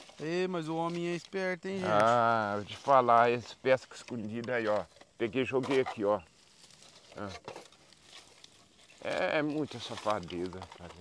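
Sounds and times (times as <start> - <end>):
dry leaves rustling: 0.0 - 3.5, 4.6 - 11.0.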